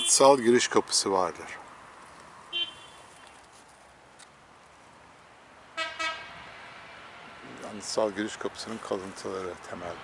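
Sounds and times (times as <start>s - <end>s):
outdoor background noise: 0.0s - 10.0s
vehicle horn honks: 2.5s - 3.2s, 5.8s - 6.4s.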